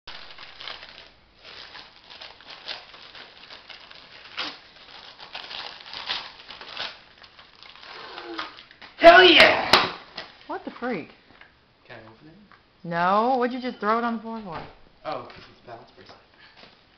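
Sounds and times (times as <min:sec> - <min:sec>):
wrapping paper tearing and crumpling: 0:00.1 - 0:09.4.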